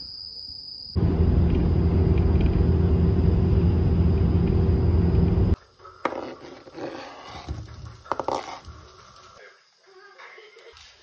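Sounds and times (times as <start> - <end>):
bus engine and road rumble: 1.0 - 5.6.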